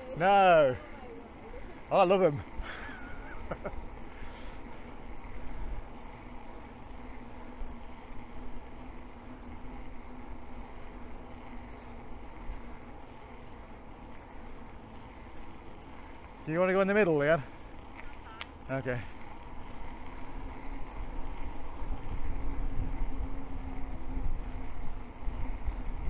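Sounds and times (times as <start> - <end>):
faint steady hum: 0.0 - 26.0
tyre noise on asphalt: 0.0 - 26.0
wind rushing over microphone: 20.2 - 26.0.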